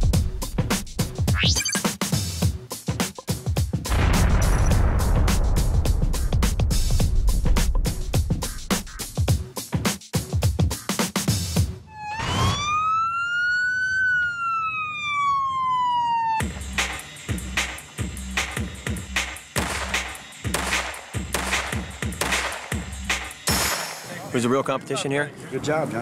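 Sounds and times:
music with heavy beat: 0.0s - 4.0s, 4.9s - 11.8s, 16.4s - 24.1s
siren wail: 11.9s - 16.7s.

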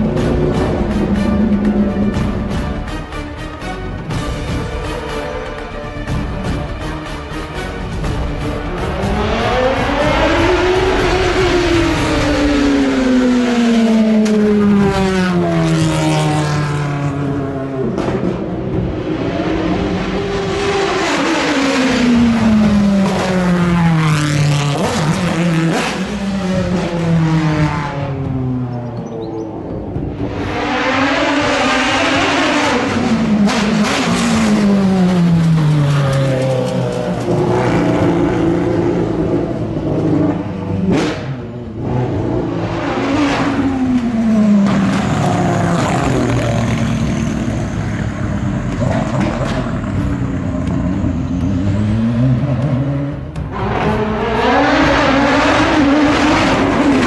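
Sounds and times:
racing cars passing at high revs: 8.6s - 57.0s.

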